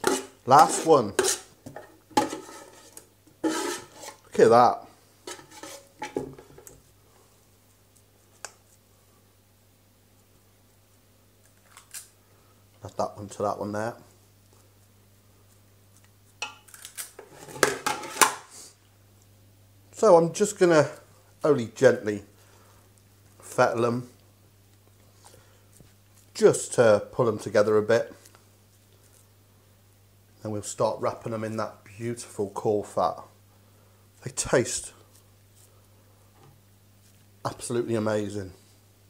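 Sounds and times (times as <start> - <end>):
metal scoop scraping bowl: 0.0 - 4.3, 5.2 - 6.2.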